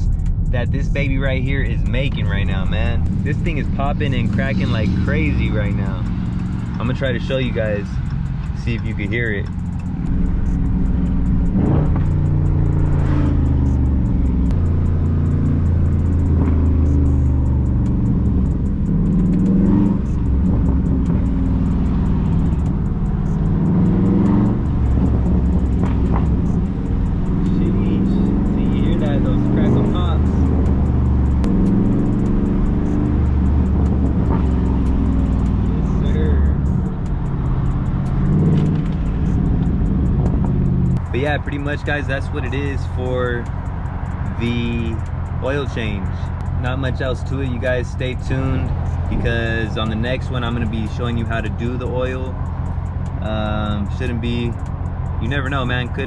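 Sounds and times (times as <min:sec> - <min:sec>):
car engine revving: 0:00.0 - 0:56.0
exhaust popping and crackling: 0:00.0 - 0:56.0.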